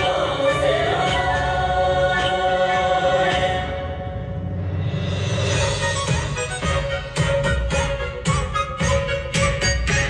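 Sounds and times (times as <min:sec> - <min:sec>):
group singing: 0:00.0 - 0:04.2.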